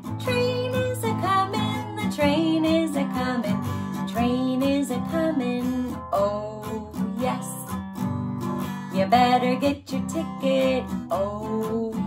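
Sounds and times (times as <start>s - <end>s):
woman singing: 0.0s - 7.8s, 8.8s - 12.0s
acoustic guitar strumming: 0.0s - 12.0s.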